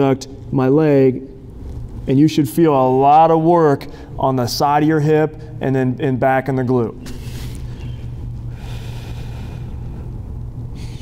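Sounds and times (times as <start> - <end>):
steady low hum: 0.0 - 11.0
man breathing slowly: 7.1 - 11.0.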